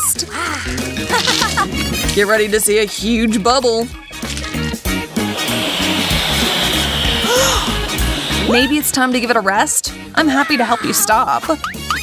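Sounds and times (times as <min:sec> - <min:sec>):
light background music: 0:00.0 - 0:12.0
airy inflating hiss: 0:05.0 - 0:08.8.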